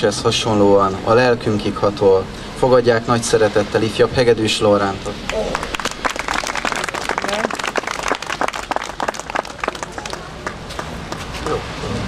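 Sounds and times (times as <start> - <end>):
crowd applauding: 5.3 - 11.2.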